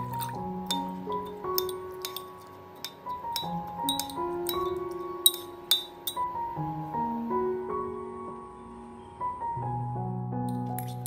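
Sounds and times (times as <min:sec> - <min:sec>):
spoon clinking against ceramic bowl: 0:00.0 - 0:06.3, 0:10.5 - 0:11.0
soft piano music: 0:00.0 - 0:11.0.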